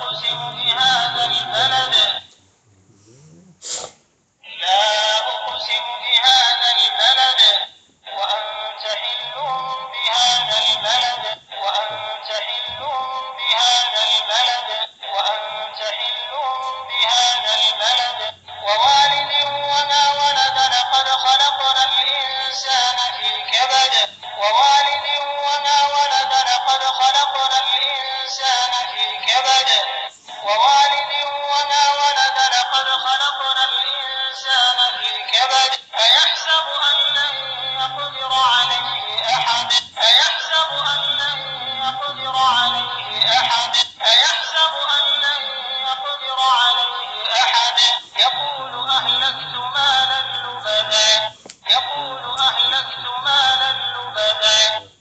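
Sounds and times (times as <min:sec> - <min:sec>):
man chanting recitation through small speaker: 0:00.0 - 0:03.6, 0:04.4 - 0:55.0.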